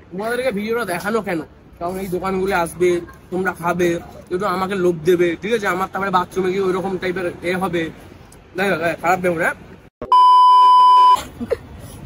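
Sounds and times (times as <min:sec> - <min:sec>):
loud electronic beep: 0:10.0 - 0:11.2.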